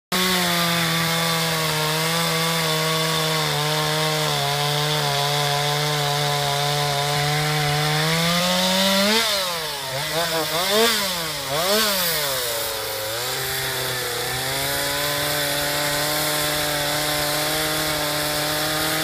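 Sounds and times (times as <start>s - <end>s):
chainsaw cutting wood: 0.1s - 19.0s.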